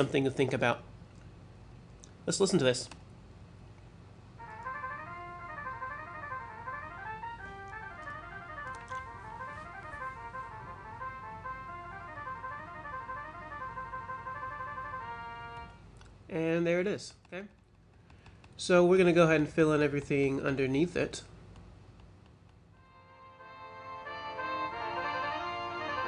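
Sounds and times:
synthesized brass playing fast runs: 0:04.4 - 0:15.8.

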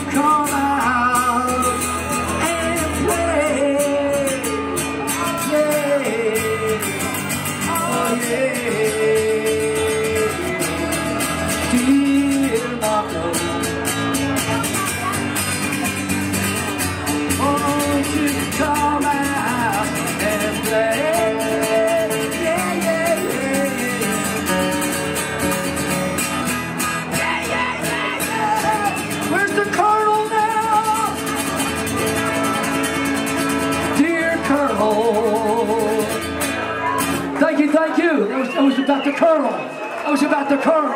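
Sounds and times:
man singing: 0:00.0 - 0:15.2, 0:17.0 - 0:38.8
acoustic guitars strumming: 0:00.0 - 0:40.3.

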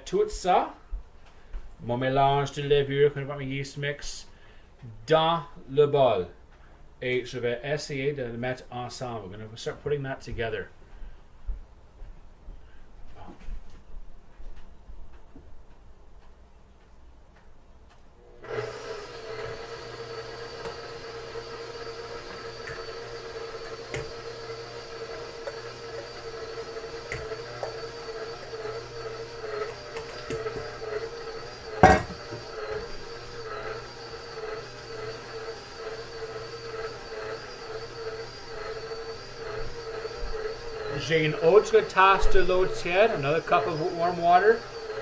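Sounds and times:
stand mixer motor hum: 0:18.3 - 0:45.0.

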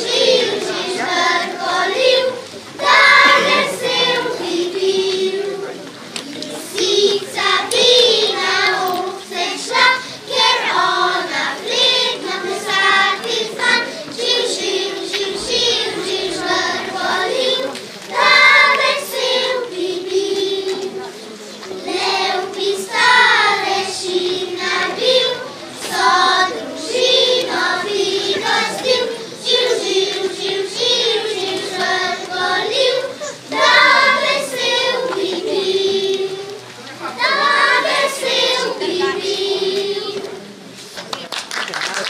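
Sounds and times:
children's choir singing: 0:00.0 - 0:40.8.

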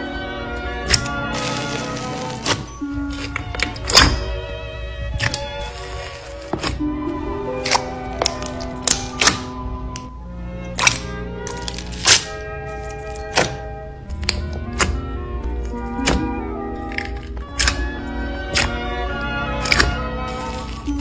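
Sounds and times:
background music: 0:00.0 - 0:21.0
slime squishing and popping: 0:07.6 - 0:09.5, 0:10.8 - 0:12.4, 0:16.9 - 0:18.9, 0:19.6 - 0:21.0.

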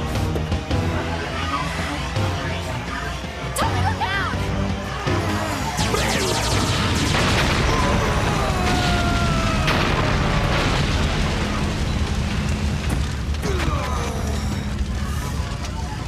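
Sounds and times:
booming explosions: 0:05.8 - 0:16.0.

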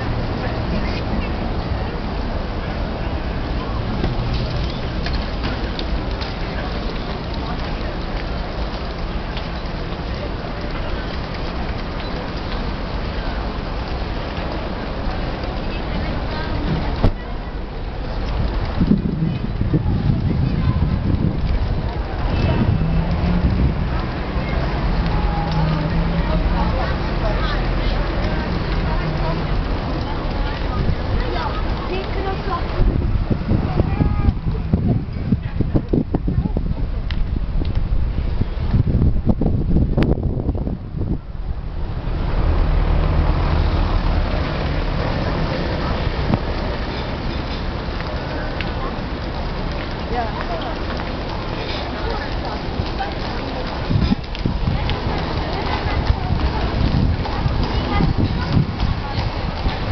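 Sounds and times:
hubbub of town square: 0:00.0 - 0:59.9
wind buffeting microphone: 0:00.0 - 0:59.9.

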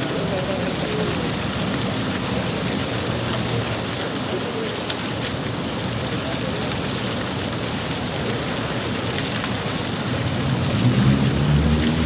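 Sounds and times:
vehicle engine hum: 0:10.2 - 0:12.0.

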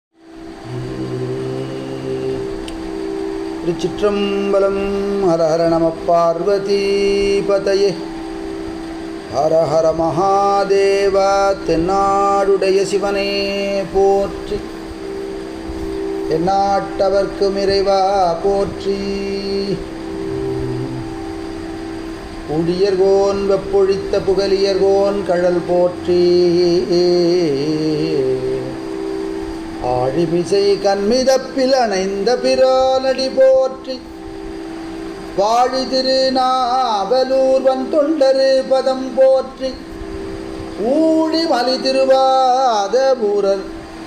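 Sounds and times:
musical drone of held notes: 0:00.1 - 0:44.0
low note: 0:00.2 - 0:10.7, 0:11.4 - 0:36.3.

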